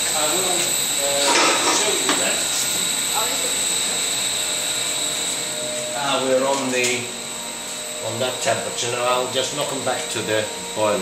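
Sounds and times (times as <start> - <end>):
steady mechanical noise: 0.0 - 11.0
thin high whine: 0.0 - 11.0.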